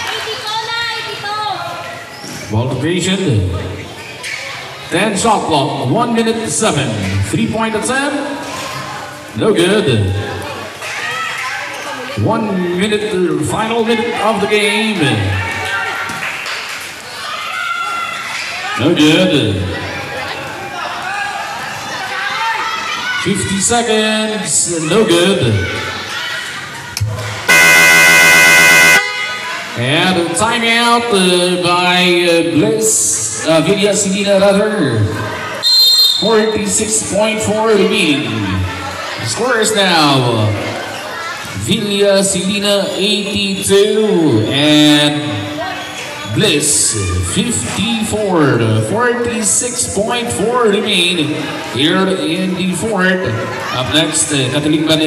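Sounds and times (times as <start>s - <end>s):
basketball game noise: 0.0s - 55.0s
low crowd noise: 0.0s - 55.0s
basketball game horn blast: 27.5s - 29.4s.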